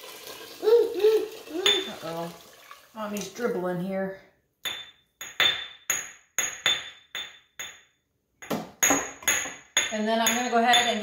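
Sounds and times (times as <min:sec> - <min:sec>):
metal spoon banging on metal: 0:04.6 - 0:11.0.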